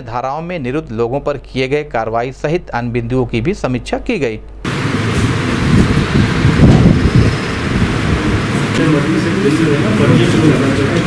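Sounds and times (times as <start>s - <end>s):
rumbling room noise: 4.6s - 11.0s.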